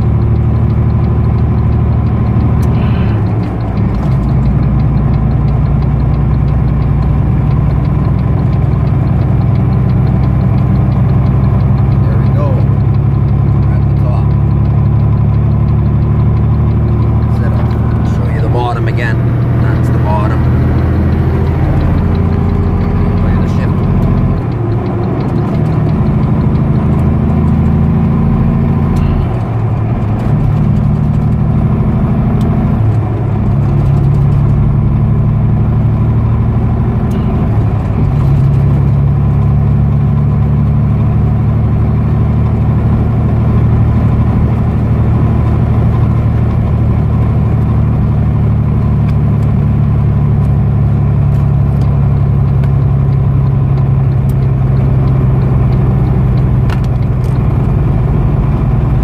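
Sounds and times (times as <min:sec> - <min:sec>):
truck diesel engine from inside cab: 0:00.0 - 0:59.0.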